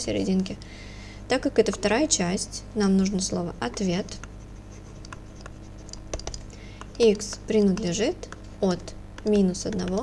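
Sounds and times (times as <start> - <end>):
steady low hum: 0.0 - 10.0
stylus scratching on tablet: 3.1 - 10.0.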